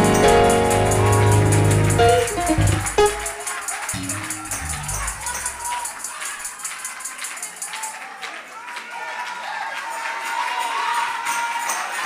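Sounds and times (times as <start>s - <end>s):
held organ note: 0.0s - 5.6s
tambourine shaking: 0.0s - 8.0s.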